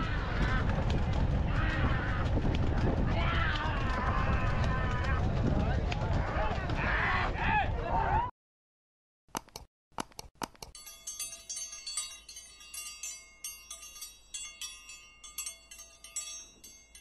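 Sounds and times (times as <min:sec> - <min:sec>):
quick clicks: 0:09.3 - 0:10.8
tinkling chime strikes: 0:10.8 - 0:17.0.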